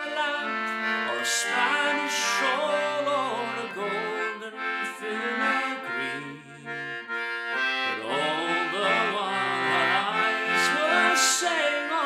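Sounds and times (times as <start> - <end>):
concertina playing held chords: 0.0 - 12.0.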